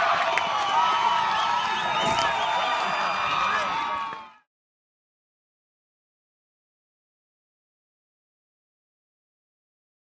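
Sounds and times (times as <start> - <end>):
crowd voices: 0.0 - 4.4.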